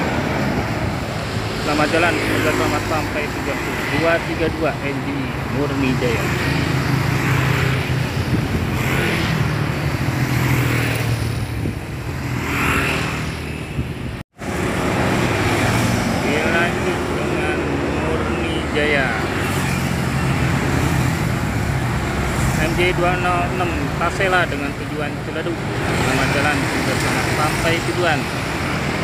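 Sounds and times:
cars passing: 0.0 - 29.0
motorcycles passing: 0.0 - 29.0.

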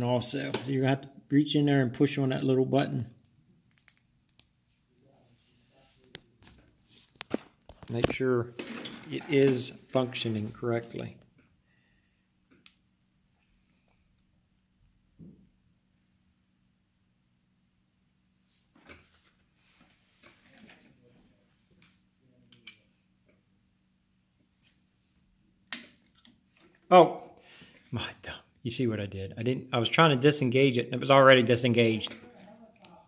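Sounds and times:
faint steady hum: 0.0 - 33.0.

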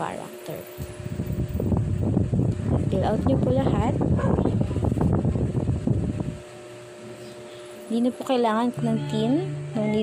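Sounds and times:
faint steady hum: 0.0 - 10.0
microphone rumble: 0.8 - 6.4.

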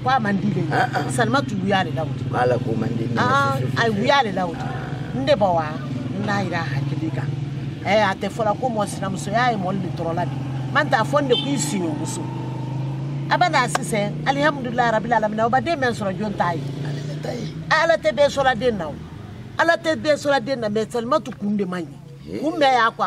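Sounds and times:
women talking: 0.0 - 12.3, 13.3 - 19.0, 19.6 - 23.0.

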